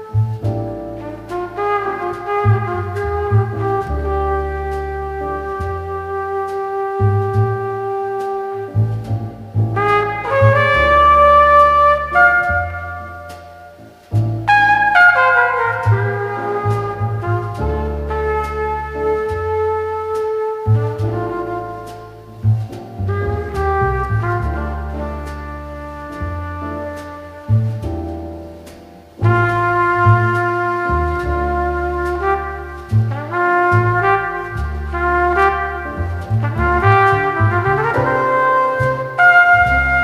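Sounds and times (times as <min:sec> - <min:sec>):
trumpet playing long notes: 0:00.0 - 0:28.0, 0:29.1 - 0:40.0
double bass: 0:00.0 - 0:40.0
piano: 0:00.0 - 0:40.0
drums with cymbal ticks: 0:11.6 - 0:14.8, 0:15.8 - 0:24.6, 0:26.1 - 0:36.9.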